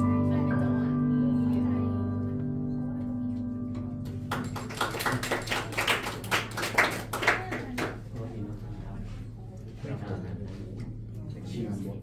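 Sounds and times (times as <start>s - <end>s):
piano and cello note: 0.0s - 5.3s
audience clapping: 4.0s - 8.2s.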